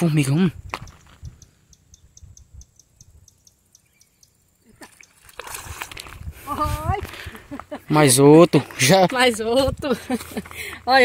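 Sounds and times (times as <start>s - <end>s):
fish splashing in water: 4.8s - 6.2s.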